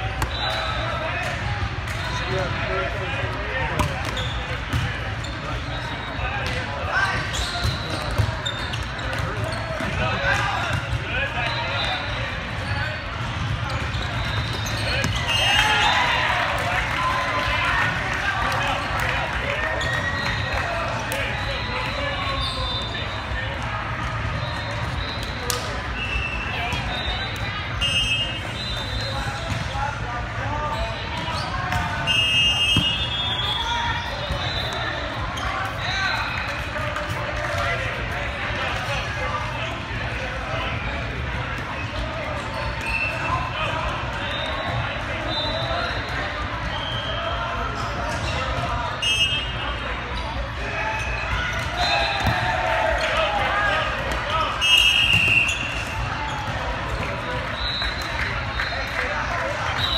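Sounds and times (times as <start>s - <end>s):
volleyballs hit and bouncing: 0.0s - 5.7s, 6.3s - 22.4s, 23.4s - 33.1s
many overlapping voices: 0.0s - 59.9s.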